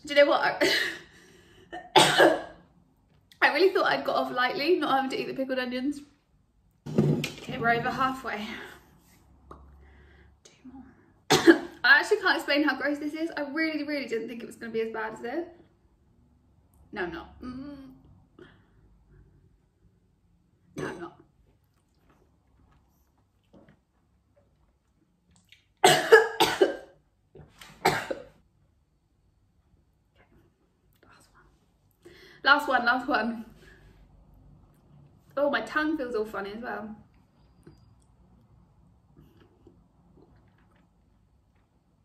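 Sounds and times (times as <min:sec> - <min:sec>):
woman coughing sharply: 0:01.8 - 0:02.6, 0:11.3 - 0:11.8, 0:25.8 - 0:26.9, 0:27.8 - 0:28.3.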